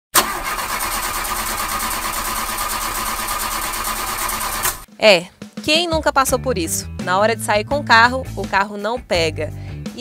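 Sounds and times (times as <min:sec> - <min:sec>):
car starter motor cranking: 0:00.2 - 0:04.9.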